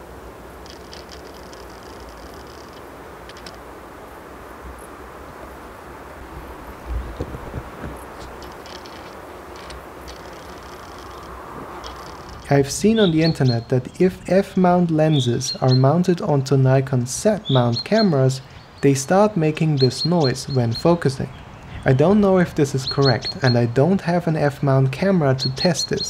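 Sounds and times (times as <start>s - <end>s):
faint outdoor background: 0.0s - 26.0s.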